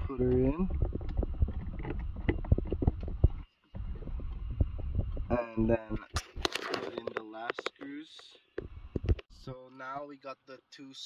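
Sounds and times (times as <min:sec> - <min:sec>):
low steady rumble: 0:00.0 - 0:06.1.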